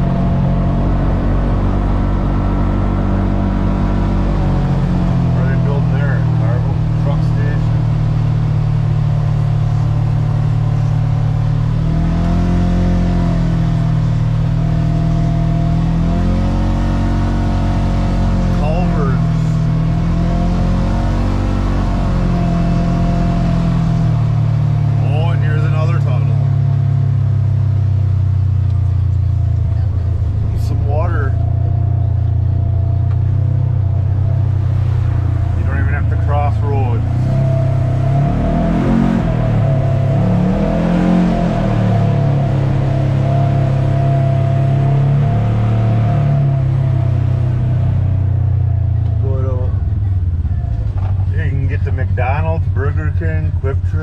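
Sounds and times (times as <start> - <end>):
engine running steadily: 0.0 - 54.0.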